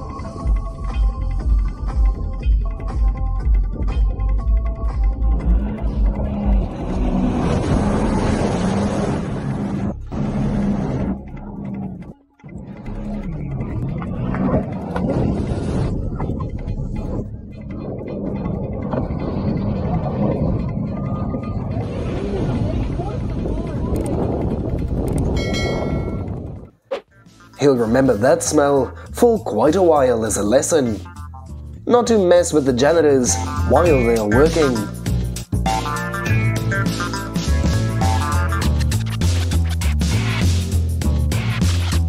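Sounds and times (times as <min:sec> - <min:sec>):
jet ski engines revving: 0:05.8 - 0:12.1.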